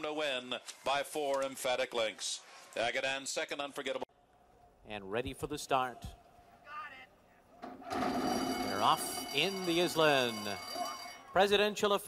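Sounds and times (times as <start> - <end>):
starting gate springing open: 7.6 - 9.5
start bell ringing: 7.9 - 11.4.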